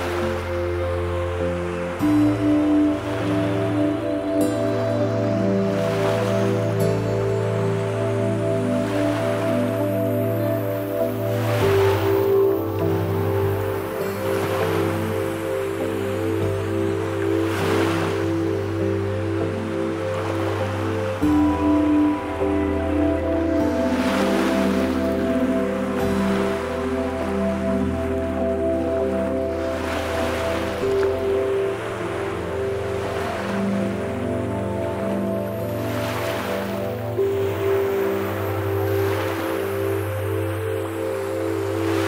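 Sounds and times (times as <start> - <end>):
ocean waves washing in: 0.0 - 42.0
slow ambient music: 0.0 - 42.0.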